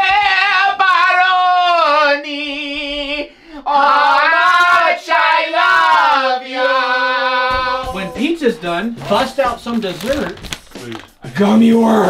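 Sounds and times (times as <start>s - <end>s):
high voice singing with vibrato: 0.0s - 8.4s.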